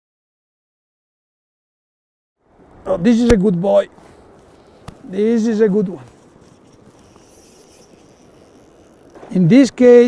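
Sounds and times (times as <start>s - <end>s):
river flowing: 2.5s - 9.2s.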